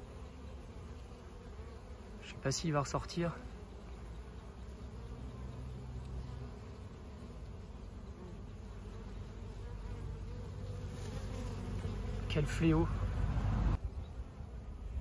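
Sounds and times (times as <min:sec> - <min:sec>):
bees buzzing: 0:00.0 - 0:15.0.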